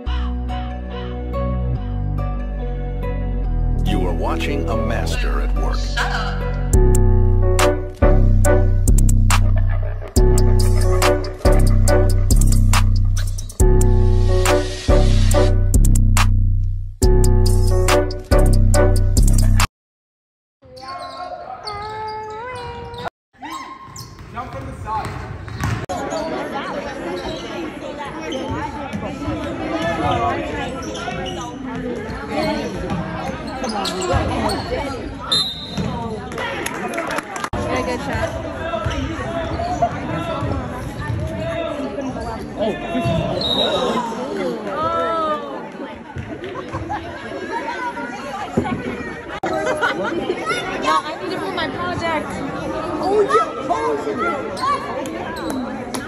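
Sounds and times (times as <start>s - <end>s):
crowd chatter: 0.0s - 2.4s, 3.8s - 15.8s, 24.6s - 56.0s
ball bouncing on hardwood court: 23.9s - 25.8s
voices echoing in hall: 35.9s - 56.0s.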